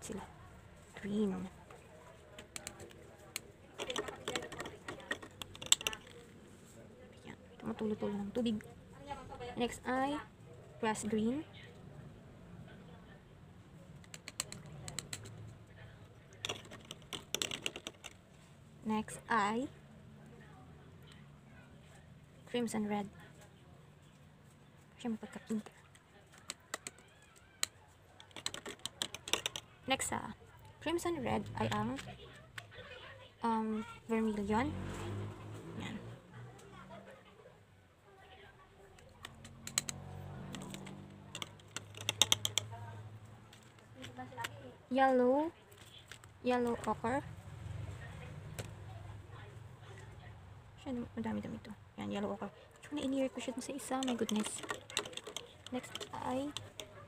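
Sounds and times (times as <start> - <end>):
paint tubes and caps clicking: 2.4 - 6.3, 16.3 - 18.2, 26.3 - 29.7, 38.9 - 42.7, 53.8 - 57.0.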